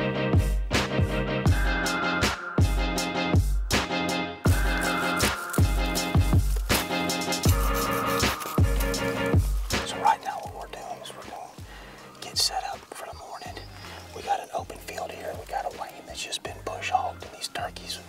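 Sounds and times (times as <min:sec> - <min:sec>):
music with low bass notes: 0:00.0 - 0:18.0
man whispering: 0:09.8 - 0:18.0.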